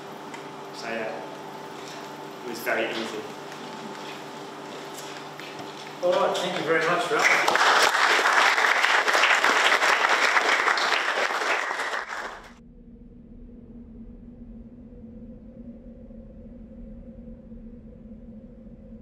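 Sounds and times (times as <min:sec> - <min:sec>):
audience applauding: 0:03.0 - 0:12.6.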